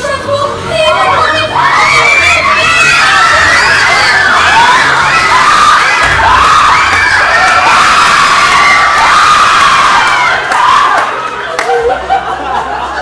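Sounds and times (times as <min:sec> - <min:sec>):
children shouting and screaming: 0:00.0 - 0:11.4.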